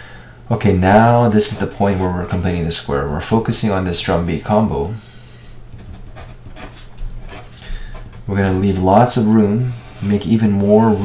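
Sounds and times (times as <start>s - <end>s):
pencil scratching on paper: 5.8s - 8.9s.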